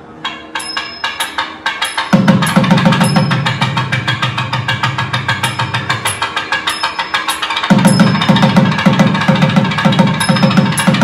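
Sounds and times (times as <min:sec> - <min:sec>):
fast drum strokes: 0:00.6 - 0:11.0.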